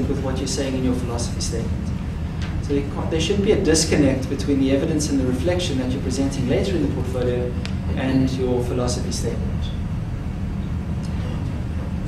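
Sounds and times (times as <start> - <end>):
low room background rumble: 0.0 - 12.0.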